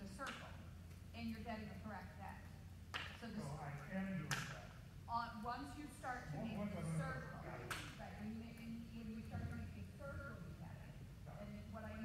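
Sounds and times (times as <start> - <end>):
steady low hum: 0.0 - 12.0
indistinct voices talking: 5.7 - 8.4.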